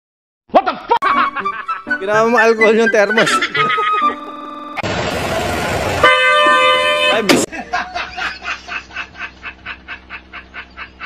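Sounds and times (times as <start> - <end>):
loud burst of noise: 4.8 - 7.0
horn-like toot sliding down: 6.0 - 7.3.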